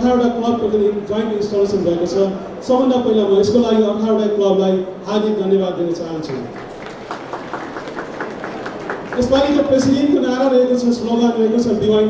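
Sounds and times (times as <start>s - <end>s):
low steady background noise: 0.0s - 12.0s.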